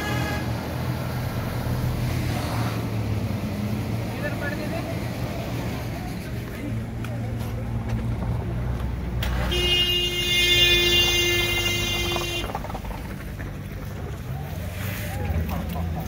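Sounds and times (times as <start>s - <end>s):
vehicle horn blast: 0.0s - 0.6s, 9.4s - 12.6s
vehicle engine rumble: 0.0s - 16.0s.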